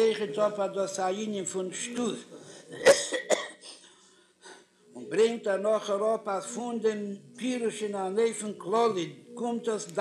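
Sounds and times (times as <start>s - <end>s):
person coughing: 2.7s - 3.9s.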